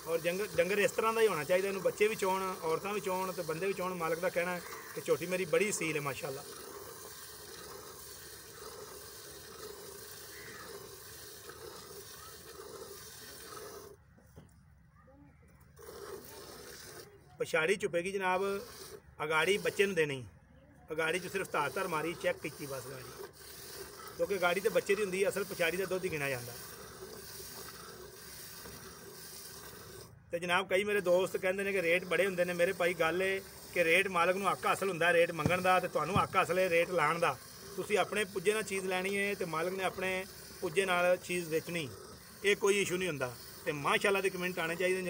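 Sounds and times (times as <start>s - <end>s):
milk squirting into bucket: 0.0s - 14.0s, 15.8s - 17.2s, 18.4s - 20.0s, 21.0s - 30.1s, 30.9s - 45.0s.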